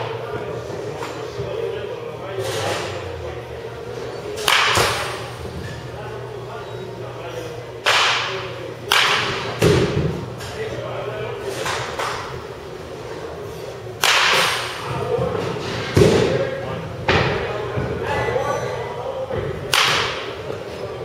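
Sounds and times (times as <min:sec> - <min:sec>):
bat cracking against baseballs: 0:04.3 - 0:05.3, 0:07.7 - 0:10.6, 0:13.9 - 0:14.9, 0:19.6 - 0:20.4.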